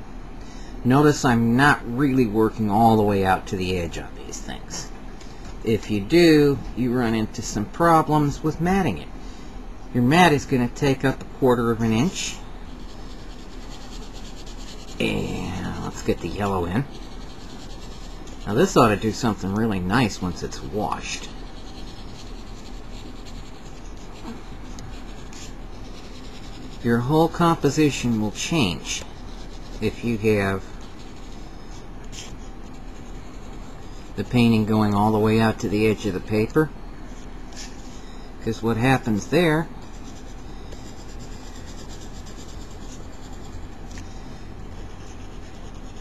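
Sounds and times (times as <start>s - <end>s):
faint low hum: 0.0s - 46.0s
pastel scratching on paper: 11.7s - 36.4s, 37.1s - 46.0s.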